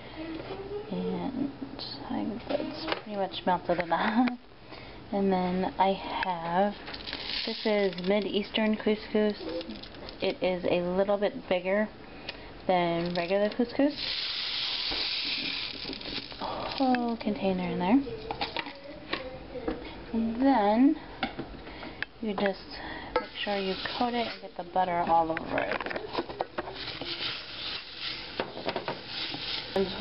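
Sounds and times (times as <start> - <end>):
couscous pouring into saucepan: 6.9 - 8.1, 13.9 - 16.8, 26.8 - 29.9
spoon stirring grains in pot: 6.9 - 9.9, 13.1 - 17.3, 23.2 - 24.6, 26.6 - 30.0.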